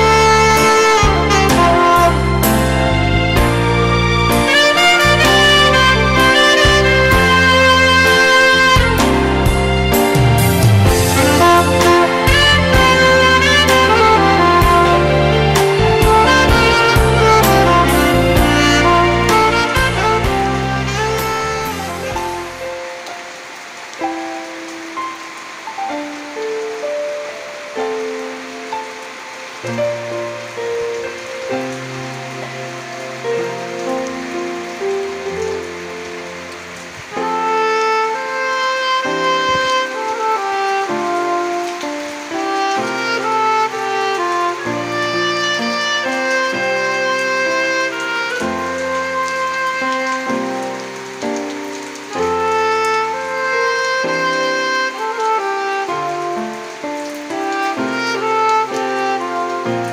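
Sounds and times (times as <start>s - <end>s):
background music melody: 0.0s - 59.9s
steady rain falling: 0.0s - 59.9s.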